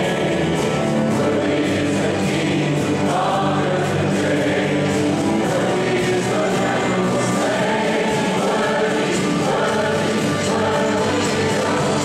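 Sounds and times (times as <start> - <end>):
congregation singing worship song: 0.0 - 12.0
instrumental accompaniment: 0.0 - 12.0
worship leaders singing on microphone: 0.0 - 12.0.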